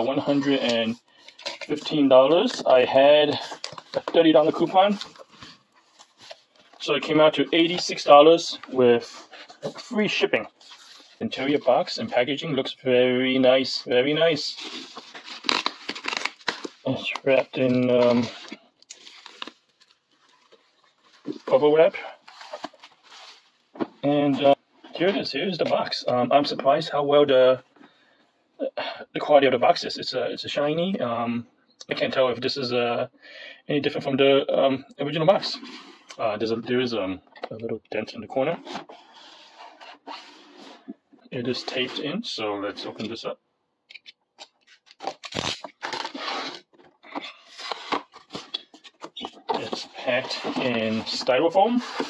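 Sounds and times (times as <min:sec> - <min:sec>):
bubble wrap rustling: 0:14.5 - 0:21.6
cardboard rubbing and scraping: 0:45.6 - 0:52.0.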